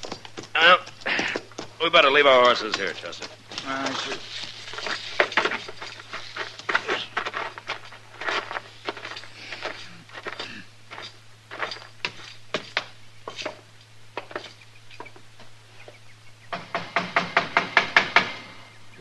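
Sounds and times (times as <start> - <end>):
footsteps walking: 0.0 - 16.0.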